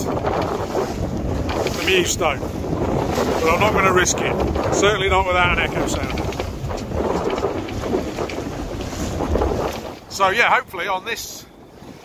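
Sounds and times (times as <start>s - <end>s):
water splashing along boat hull: 0.0s - 12.0s
wind buffeting microphone: 0.0s - 12.0s.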